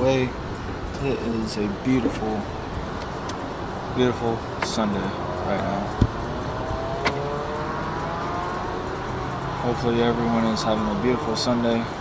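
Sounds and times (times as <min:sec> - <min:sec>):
car engine and road rumble: 0:00.0 - 0:12.0
faint rising whine: 0:00.4 - 0:12.0.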